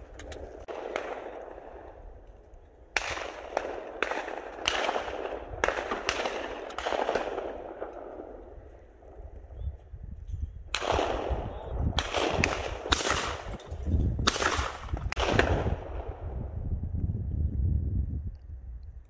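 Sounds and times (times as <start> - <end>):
shotgun shots with echo: 0.6 - 2.0, 3.0 - 8.4, 10.7 - 16.3.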